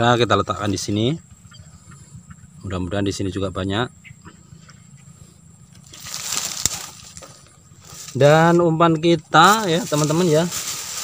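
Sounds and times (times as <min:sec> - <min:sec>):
faint steady high hum: 0:00.0 - 0:11.0
rustling: 0:05.8 - 0:08.7, 0:09.4 - 0:11.0.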